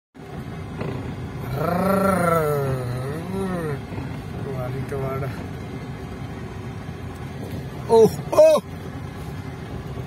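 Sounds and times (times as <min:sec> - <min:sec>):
car driving on dirt track: 0:00.2 - 0:10.0.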